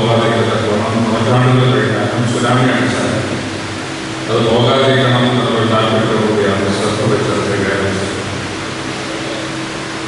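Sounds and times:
electric fans hissing: 0.0 - 10.0
faint steady hum: 0.0 - 10.0.

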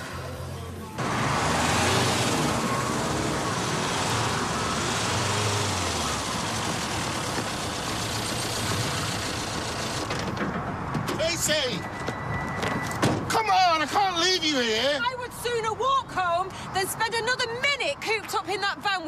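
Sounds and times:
van driving past: 0.0 - 10.1.

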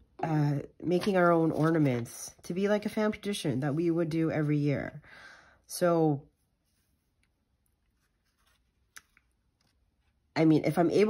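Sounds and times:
paper rustling: 0.9 - 2.1.

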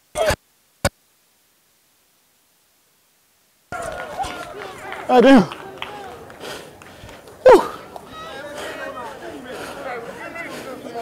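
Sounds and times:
indistinct chatter of voices: 3.7 - 11.0.

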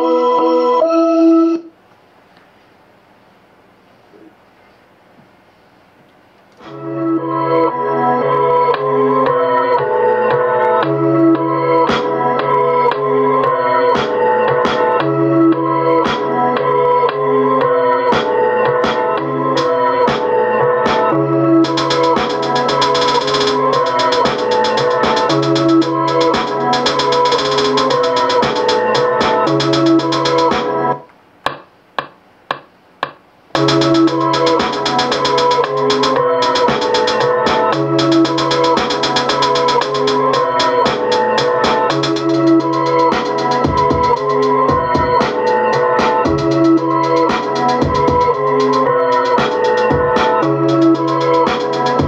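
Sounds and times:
looped organ keyboard sample: 6.6 - 31.0, 33.6 - 52.0
low bass: 21.1 - 30.6, 33.6 - 41.3, 46.2 - 49.0
fast ticking rhythm: 21.6 - 30.7, 31.4 - 52.0.

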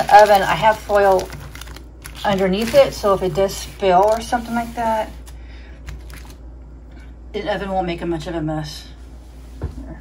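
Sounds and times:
aluminium foil crinkling: 0.0 - 6.4.

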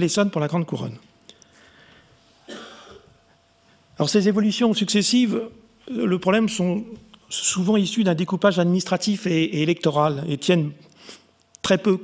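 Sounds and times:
man clearing his throat: 2.4 - 3.2.

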